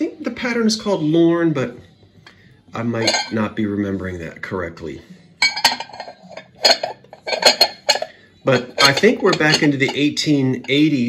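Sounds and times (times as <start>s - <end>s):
glass lid clinking on dish: 3.0s - 3.4s, 5.4s - 10.1s.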